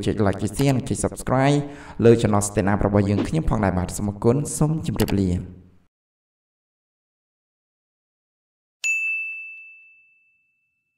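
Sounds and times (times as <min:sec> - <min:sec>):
notification bell ding: 0:08.8 - 0:10.9.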